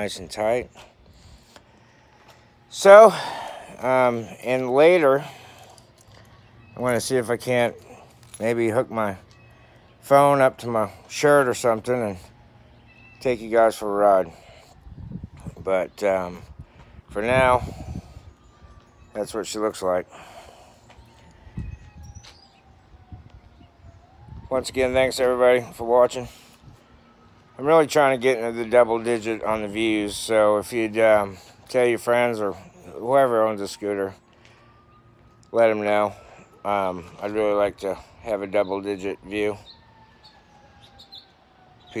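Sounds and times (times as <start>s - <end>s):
distant siren wailing: 0.0s - 42.0s
quiet outdoor background: 0.0s - 42.0s.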